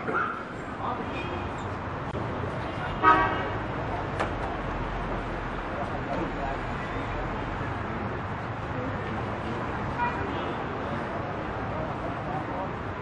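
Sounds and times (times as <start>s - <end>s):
murmur of voices: 2.5s - 13.0s.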